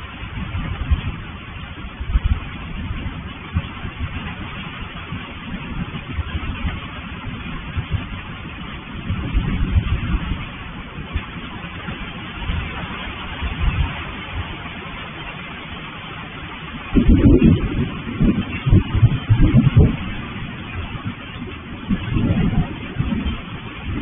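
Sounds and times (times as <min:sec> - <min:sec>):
low rumbles: 0:00.0 - 0:24.0
steady rain: 0:00.0 - 0:24.0.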